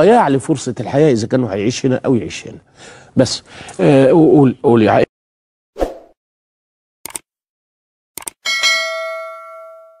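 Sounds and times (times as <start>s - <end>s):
double mouse click: 8.2s - 8.4s
notification bell ding: 8.4s - 10.0s.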